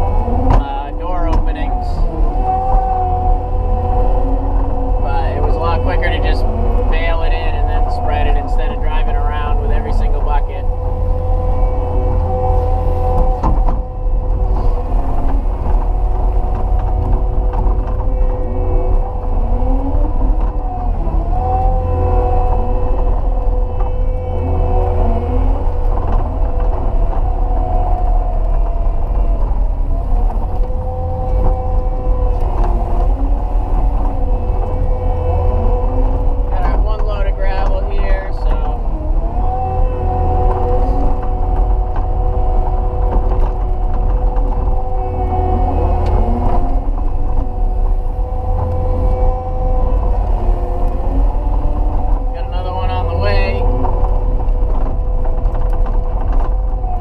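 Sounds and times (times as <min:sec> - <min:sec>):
diesel engine under load: 0:00.0 - 0:57.0
hydraulic whine: 0:00.0 - 0:57.0.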